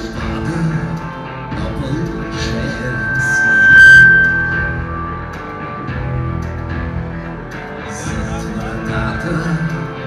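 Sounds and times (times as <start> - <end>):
high held note: 2.1 - 7.8.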